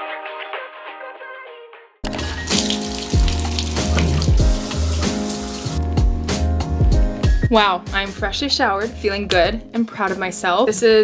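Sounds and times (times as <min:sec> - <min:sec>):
water rushing from faucet: 0:02.0 - 0:05.9
background music with beat: 0:02.0 - 0:10.2.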